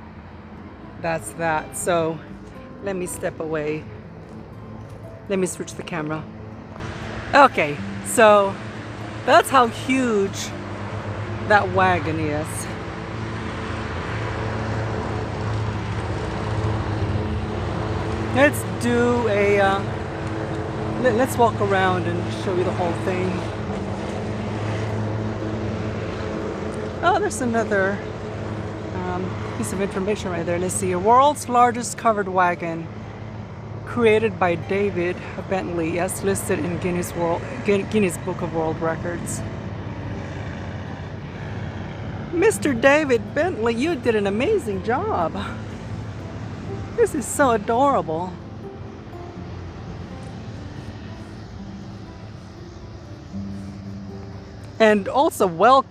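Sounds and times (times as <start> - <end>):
distant road traffic rushing: 0.0 - 55.9
low hum: 0.0 - 55.9.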